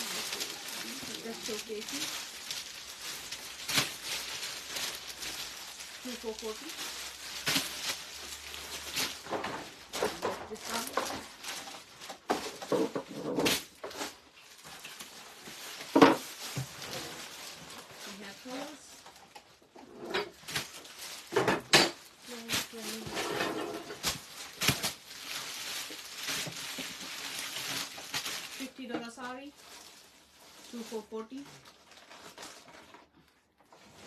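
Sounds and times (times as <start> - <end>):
plastic packaging crinkling: 0.0 - 34.0
sharp plastic crackles: 0.0 - 34.0.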